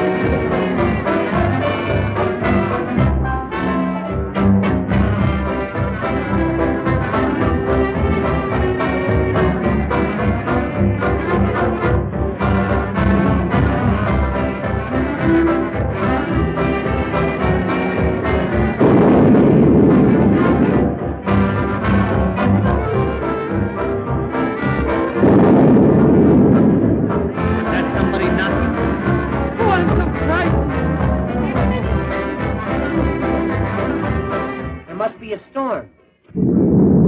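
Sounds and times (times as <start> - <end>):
brass dance band music: 0.0 - 35.1.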